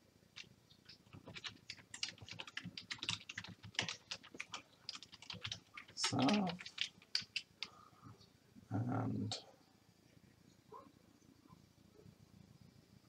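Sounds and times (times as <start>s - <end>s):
keyboard typing: 0.4s - 7.7s.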